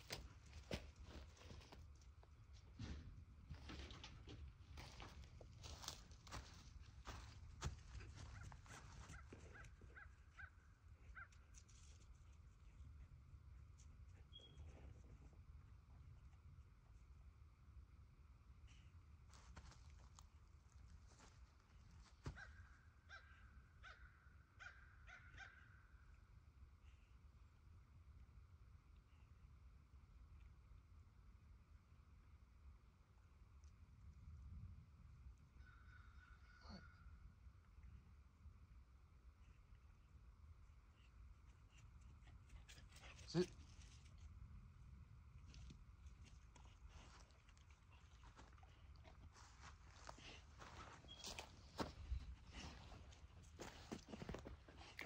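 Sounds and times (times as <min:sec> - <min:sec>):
faint dog barking: 0:07.6 - 0:11.4, 0:22.2 - 0:25.7.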